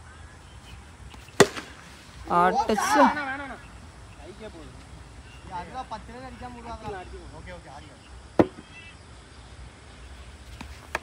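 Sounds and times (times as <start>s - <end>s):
cricket bat striking ball: 1.4s - 1.8s, 8.4s - 8.6s.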